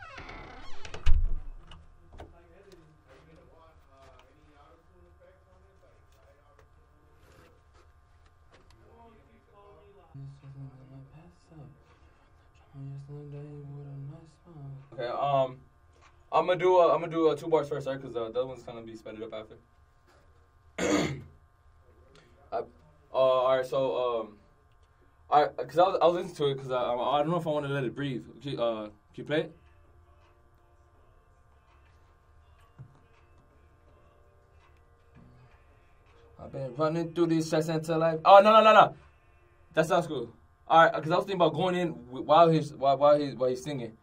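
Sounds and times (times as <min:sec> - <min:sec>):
heavy door thud: 0:00.8 - 0:01.6
faint muffled voices: 0:01.5 - 0:21.1, 0:21.7 - 0:37.2
man clearing his throat: 0:20.8 - 0:21.3.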